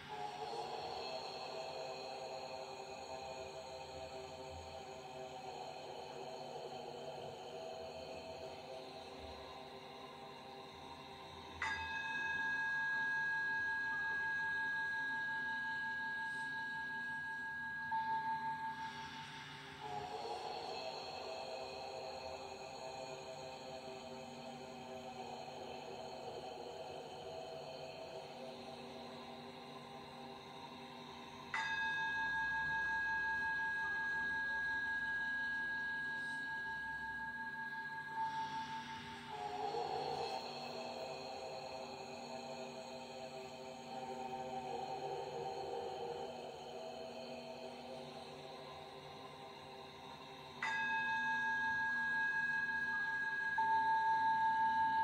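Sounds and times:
ambient music of sustained tones: 0:00.0 - 0:55.0.

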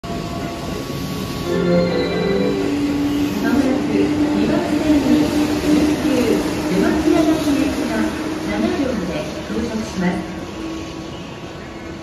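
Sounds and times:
electric train pulling out: 0:00.2 - 0:08.7
platform announcement: 0:01.4 - 0:05.2.

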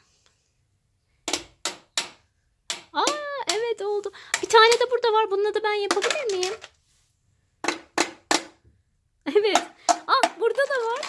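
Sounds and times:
toy hammer tapping plastic: 0:01.3 - 0:03.7, 0:04.3 - 0:04.9, 0:05.9 - 0:06.7
small child's voice: 0:03.0 - 0:06.6.

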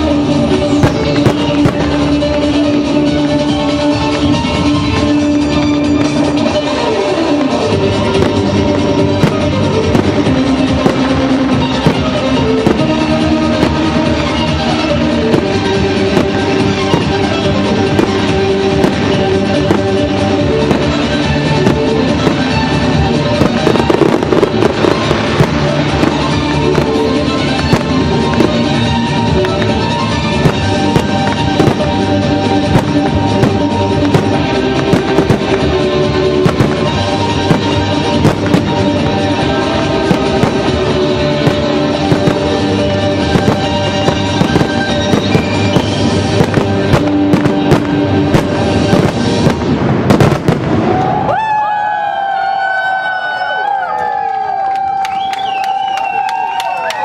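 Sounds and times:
music: 0:00.0 - 0:57.0
crowd cheering: 0:20.6 - 0:46.2, 0:50.1 - 0:57.0.

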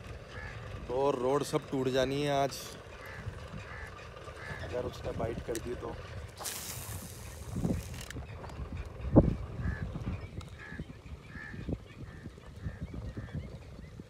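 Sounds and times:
faint calls: 0:02.1 - 0:05.0
fishing line hissing off reel: 0:06.4 - 0:08.2.

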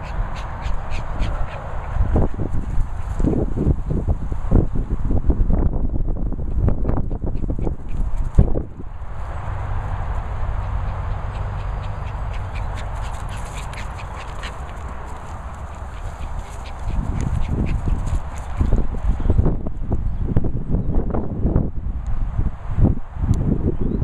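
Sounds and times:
dogs play vocalising: 0:00.0 - 0:03.6, 0:09.8 - 0:18.9
low rumbling buffets: 0:00.0 - 0:24.0.

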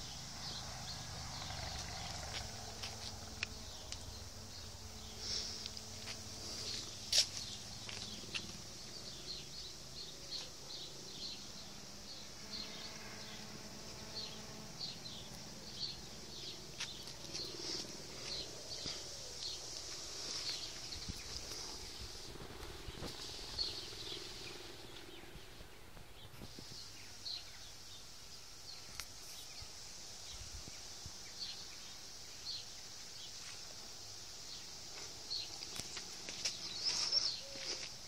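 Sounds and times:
birds chirping: 0:00.0 - 0:33.4, 0:34.4 - 0:38.0
faint high hiss: 0:00.0 - 0:38.0.

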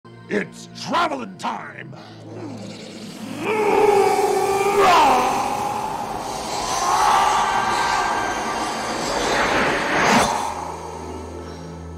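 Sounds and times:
eerie sustained music tones: 0:01.8 - 0:11.9
loud sweeping rush: 0:04.8 - 0:11.9.

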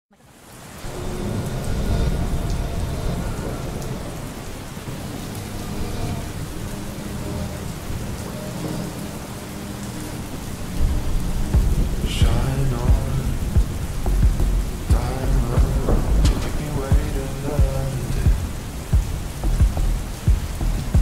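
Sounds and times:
steady rain: 0:00.1 - 0:21.0
low rumbling thunder: 0:10.8 - 0:21.0.

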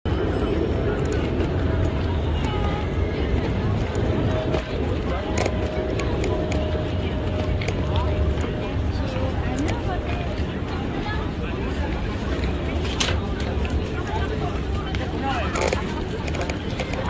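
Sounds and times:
indistinct chatter of passersby: 0:00.1 - 0:17.0
low traffic hum: 0:00.1 - 0:17.0.

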